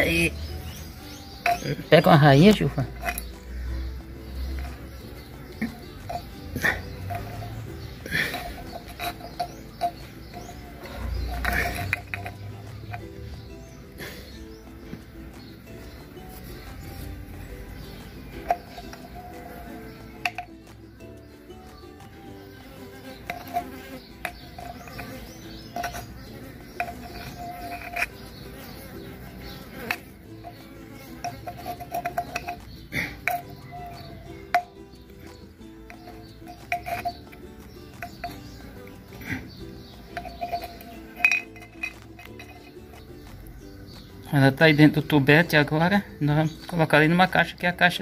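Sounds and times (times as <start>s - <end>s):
bees buzzing in flight: 22.5s - 32.0s.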